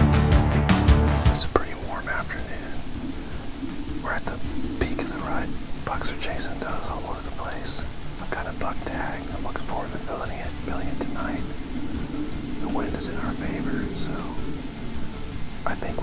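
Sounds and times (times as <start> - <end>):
man whispering: 1.3 - 11.8, 12.5 - 14.6, 15.6 - 16.0.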